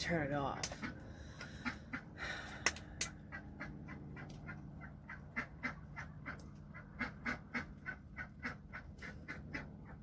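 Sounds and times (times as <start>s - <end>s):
ducks quacking: 0.7s - 2.4s, 3.0s - 10.0s.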